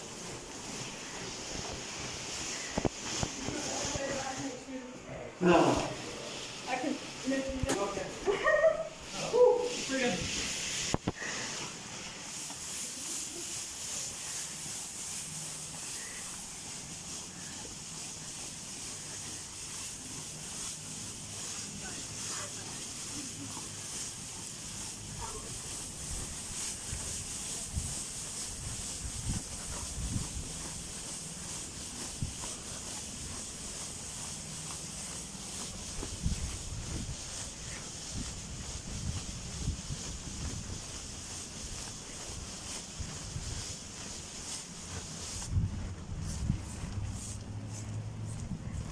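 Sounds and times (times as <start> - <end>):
blower fan hissing: 0.0 - 48.9.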